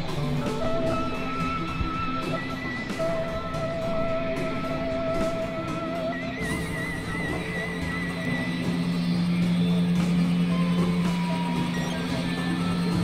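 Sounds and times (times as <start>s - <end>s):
high wavering synth tone: 0.0s - 13.0s
noisy hissing bed: 0.0s - 13.0s
steady low drone: 0.0s - 13.0s.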